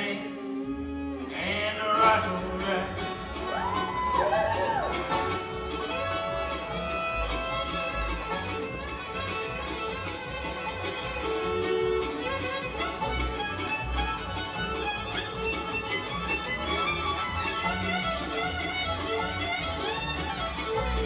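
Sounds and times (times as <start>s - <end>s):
bluegrass band playing: 0.0s - 21.0s
fiddle lead: 0.0s - 21.0s.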